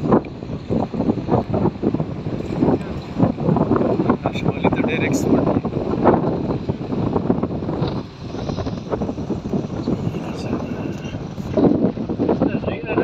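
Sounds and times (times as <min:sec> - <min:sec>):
road and engine rumble: 0:00.0 - 0:13.0
wind buffeting microphone: 0:00.0 - 0:13.0.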